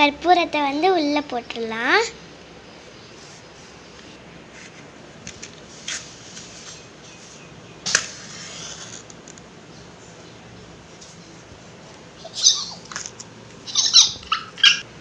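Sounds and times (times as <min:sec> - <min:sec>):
high-pitched squeaky scratches: 0:08.1 - 0:09.1.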